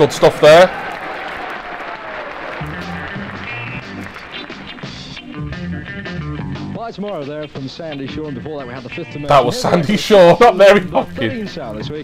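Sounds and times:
audience applause: 0.0 - 5.2
instrumental pop music: 2.6 - 10.1.

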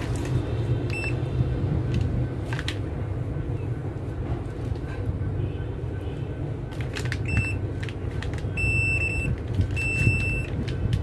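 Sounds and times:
meter beeping: 0.9 - 1.3, 7.2 - 7.6, 8.6 - 10.6.

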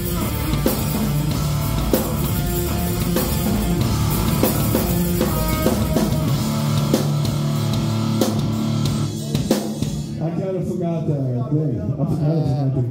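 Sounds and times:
distorted electric guitar: 0.0 - 10.2
drum kit: 0.0 - 10.8.

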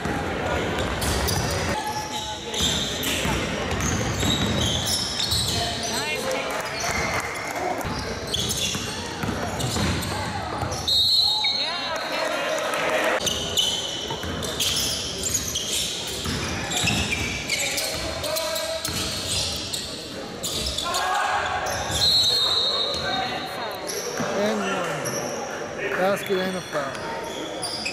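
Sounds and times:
high shoe squeaks: 0.8 - 7.1, 7.9 - 12.1, 13.2 - 25.4, 26.2 - 27.9
basketball bouncing on hardwood floor: 9.2 - 10.0.

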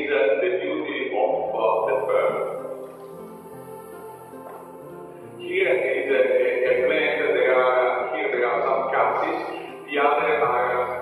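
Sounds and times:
music with singing: 0.9 - 11.0.

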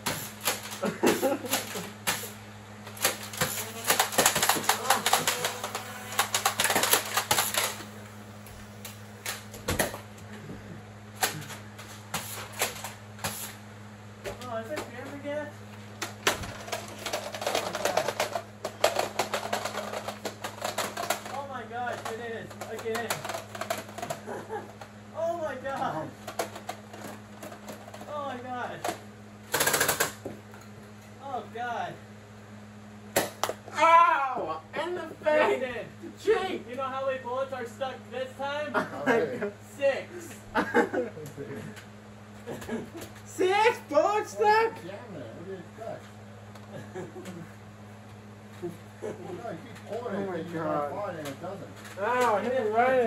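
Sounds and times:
foam-dart blasters clicking and firing: 0.0 - 7.9, 16.1 - 21.4, 22.0 - 24.2, 28.8 - 30.2
voices calling out: 3.4 - 6.7.

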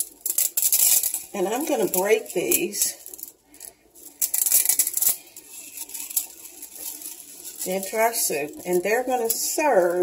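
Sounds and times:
dry noodles snapping and cracking: 0.0 - 9.4.

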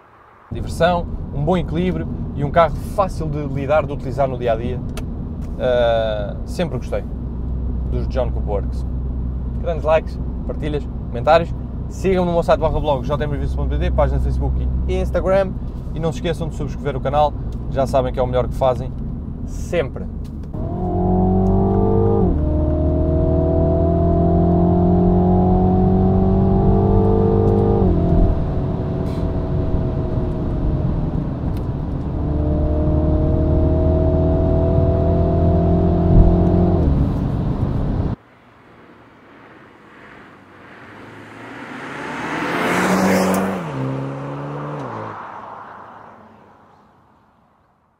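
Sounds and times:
car engine accelerating inside cabin: 20.2 - 38.2, 41.1 - 44.9
car passing by: 38.3 - 47.7.

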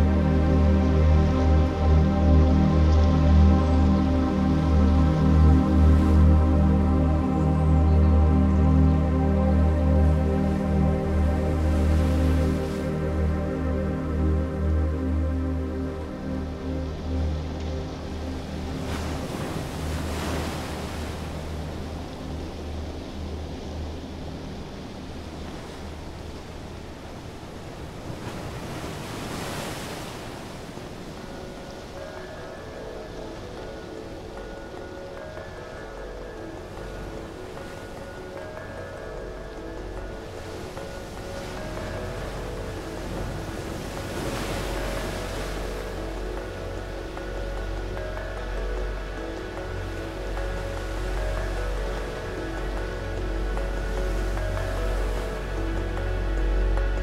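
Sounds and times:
steady low drone: 0.0 - 26.8, 31.4 - 57.0
soft held synth chords: 0.0 - 29.2, 30.3 - 57.0.

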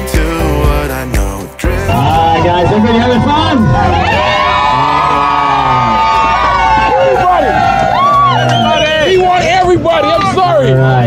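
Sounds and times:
passengers yelling and cheering: 1.7 - 11.0
speedboat engine rumble: 1.7 - 11.0.

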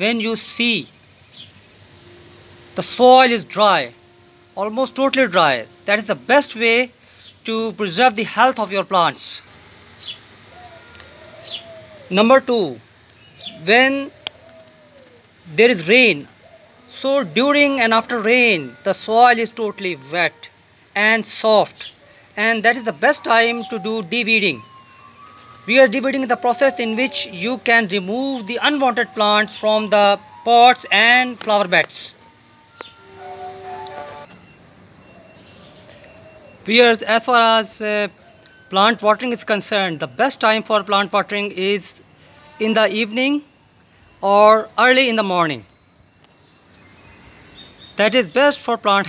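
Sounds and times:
high downward chirps: 0.0 - 12.8, 15.5 - 35.6
faint background sound: 0.0 - 49.0
distant horn-like blare: 1.6 - 8.5, 15.6 - 21.7, 22.4 - 35.2
faint bird calls: 9.9 - 12.4, 13.1 - 37.0, 42.0 - 45.0.

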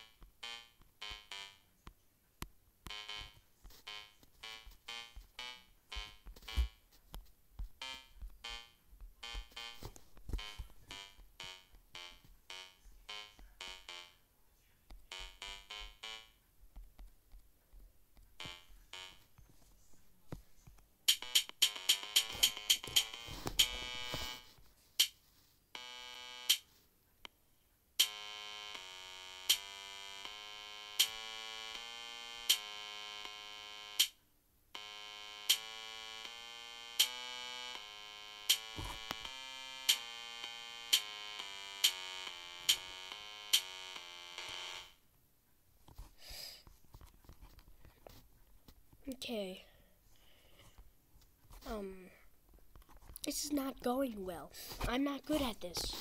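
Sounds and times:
drum-machine beats: 2.9 - 6.8, 7.6 - 12.3, 21.1 - 25.1, 28.0 - 33.4, 37.0 - 44.9.

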